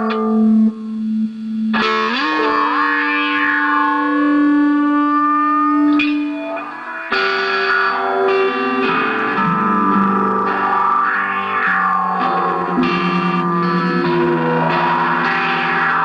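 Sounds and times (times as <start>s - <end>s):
distorted electric guitar: 0.0s - 16.0s.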